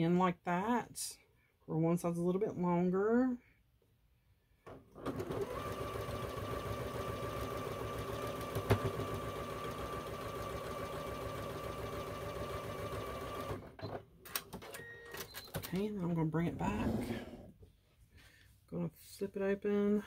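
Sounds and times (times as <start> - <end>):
sewing machine stitching: 4.7 - 15.8.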